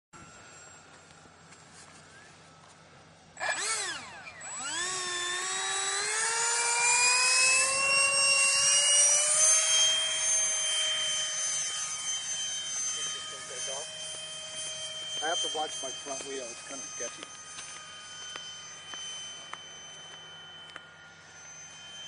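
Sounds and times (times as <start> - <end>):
model airplane motor whine: 0.2 - 22.0.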